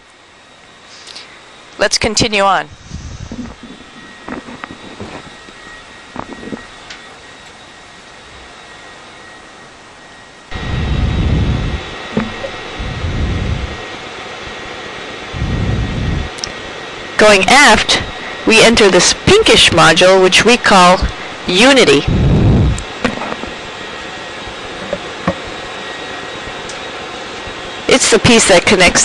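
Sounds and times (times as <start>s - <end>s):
ventilation whir: 0.0s - 29.0s
low rumbles: 10.5s - 18.8s, 21.0s - 23.7s.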